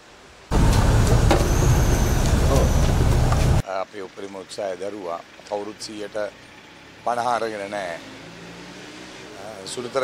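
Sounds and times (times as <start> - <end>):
bus engine running: 0.5 - 3.6
road traffic noise: 0.5 - 10.0
people's voices: 1.6 - 3.6.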